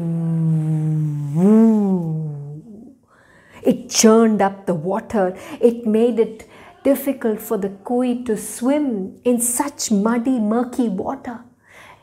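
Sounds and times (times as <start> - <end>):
woman imitating wind: 0.0 - 2.9.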